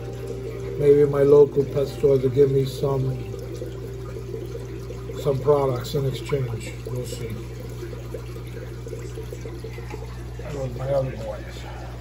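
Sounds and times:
aquarium water bubbling: 0:00.0 - 0:12.0
constant low hum: 0:00.0 - 0:12.0.

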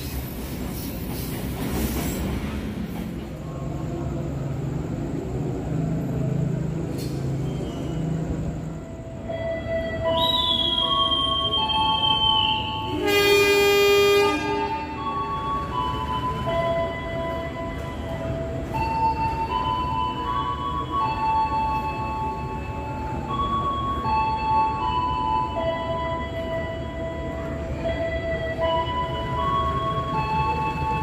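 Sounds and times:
low rumble of standing train: 0:00.0 - 0:31.0
high whistle-like tone: 0:07.0 - 0:08.3, 0:09.8 - 0:13.0
train horn: 0:12.7 - 0:15.0.

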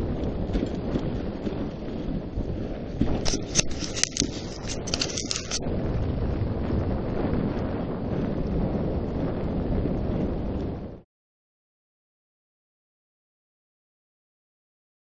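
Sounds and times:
sled rumbling over snow: 0:00.0 - 0:11.0
wind buffeting microphone: 0:00.0 - 0:11.0.

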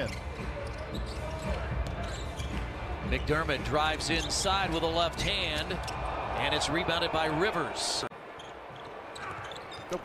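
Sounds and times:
low hum of arena ambience: 0:00.0 - 0:10.0.

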